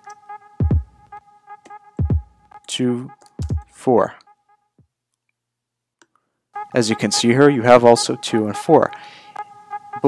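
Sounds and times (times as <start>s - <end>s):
person speaking: 2.7s - 4.2s, 6.7s - 9.0s.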